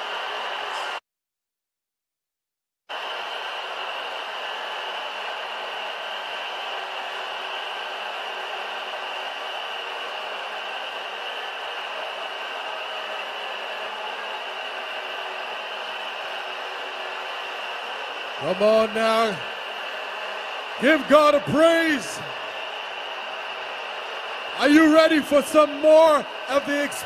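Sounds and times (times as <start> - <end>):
stadium crowd cheering: 0.0 - 1.0, 2.9 - 27.0.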